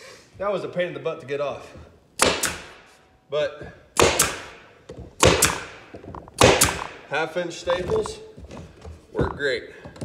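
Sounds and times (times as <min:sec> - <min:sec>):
pneumatic stapler firing into wood: 0:02.2 - 0:03.0, 0:04.0 - 0:04.6, 0:05.2 - 0:07.0.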